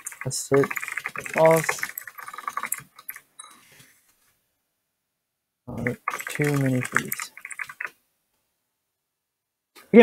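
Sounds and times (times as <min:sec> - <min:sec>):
computer keyboard typing: 0:00.0 - 0:03.6, 0:05.8 - 0:08.0.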